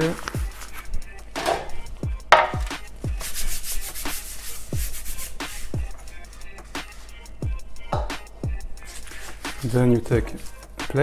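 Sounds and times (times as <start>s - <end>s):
kitchen items rubbing and rustling: 0.0s - 7.2s, 8.8s - 11.0s
music with deep bass drum beat: 0.2s - 11.0s
sharp knock: 2.3s - 2.7s.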